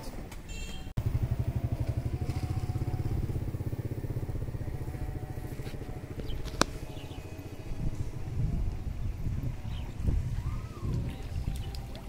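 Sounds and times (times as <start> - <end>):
small engine puttering: 0.6 - 9.1.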